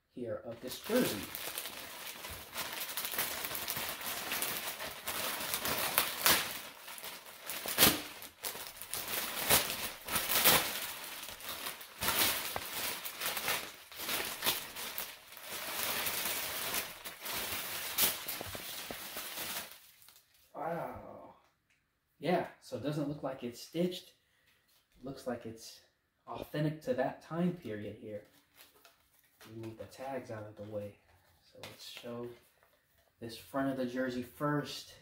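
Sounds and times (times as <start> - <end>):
plastic bag crinkling and rustling: 0.6 - 20.5, 28.2 - 33.0.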